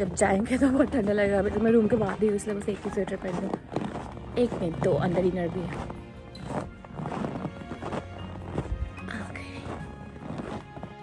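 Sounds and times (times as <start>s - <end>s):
background music: 0.0s - 11.0s
footsteps in snow: 0.0s - 11.0s.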